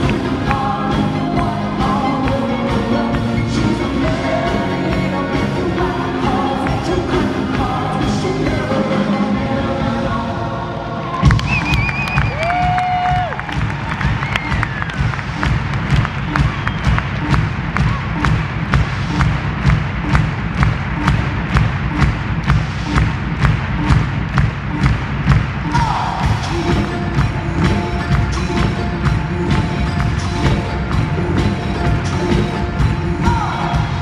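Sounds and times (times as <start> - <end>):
live pop music with heavy bass: 0.0 - 34.0.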